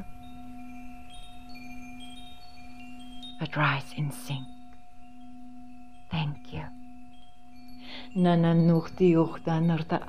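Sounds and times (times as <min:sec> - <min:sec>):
wind chimes ringing: 0:00.0 - 0:10.0.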